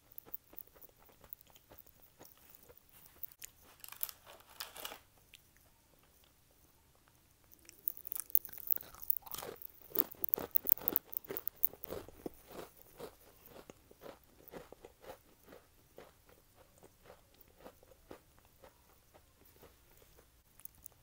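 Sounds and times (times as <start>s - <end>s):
crunchy chewing: 0.0s - 6.4s, 7.4s - 21.0s
cookie snapping: 7.5s - 13.0s.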